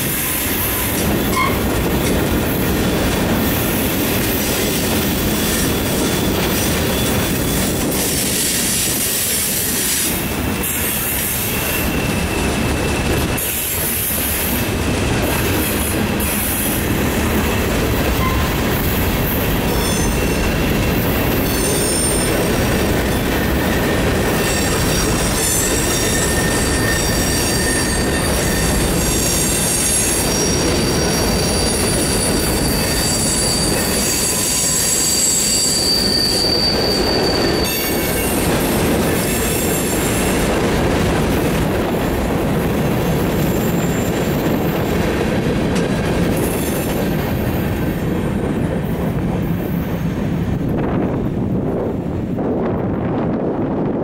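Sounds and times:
steel wheels rumbling on rail: 0:00.0 - 0:54.0
wheels squealing: 0:00.8 - 0:02.1, 0:17.6 - 0:38.5.

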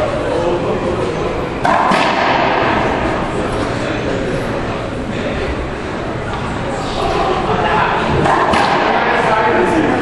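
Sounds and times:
echoing din with voices: 0:00.0 - 0:10.0.

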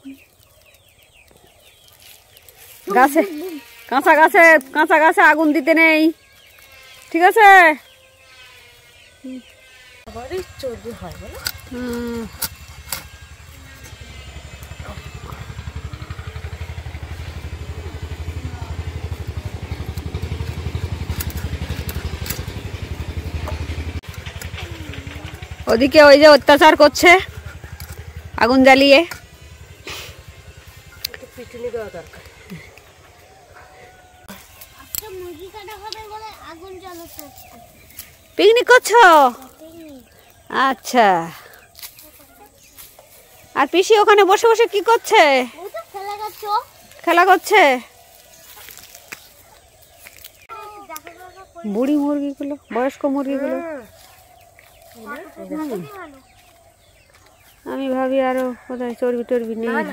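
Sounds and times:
small engine thudding: 0:10.2 - 0:33.0.

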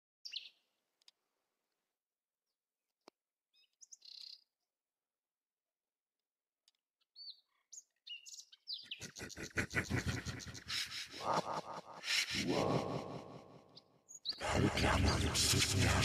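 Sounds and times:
small birds chirping: 0:00.2 - 0:00.7, 0:03.5 - 0:04.6, 0:06.7 - 0:11.3, 0:13.7 - 0:14.4.

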